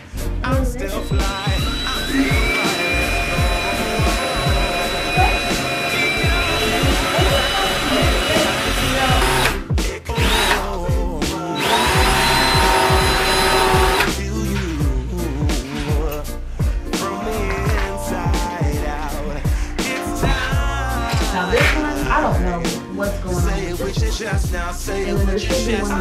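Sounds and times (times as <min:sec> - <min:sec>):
background music with steady beat: 0:00.0 - 0:26.0
power drill driving screws: 0:01.0 - 0:09.6, 0:10.2 - 0:10.8, 0:11.5 - 0:14.2, 0:21.1 - 0:21.8.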